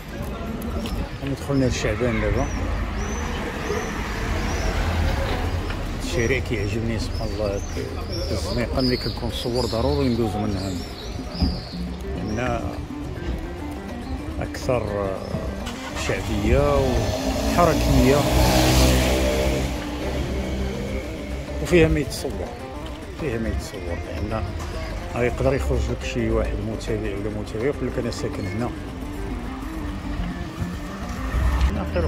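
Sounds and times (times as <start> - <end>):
moped passing by: 0.2 - 8.8, 11.8 - 25.9, 26.5 - 32.0
high bird chirps: 1.4 - 16.1
steady engine hum: 15.4 - 23.2.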